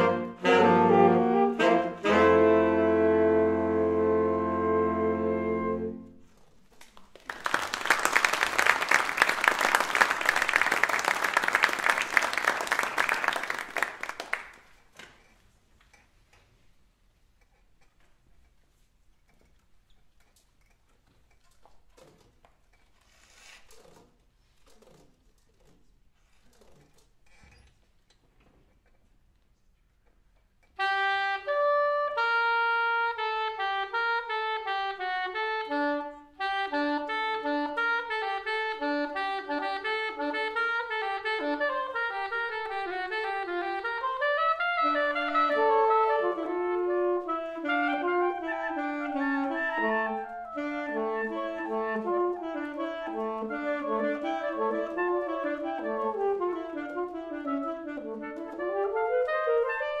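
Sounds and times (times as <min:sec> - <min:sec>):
saxophone quartet playing: 0:00.0 - 0:06.4, 0:30.8 - 1:00.0.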